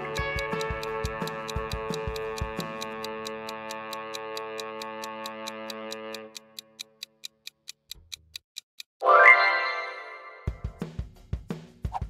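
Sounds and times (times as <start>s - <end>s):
clock-like timer ticking: 0.0s - 9.0s.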